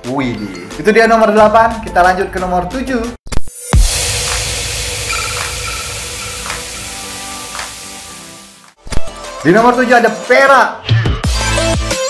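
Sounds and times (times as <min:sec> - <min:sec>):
hissing static noise: 0:03.7 - 0:08.8.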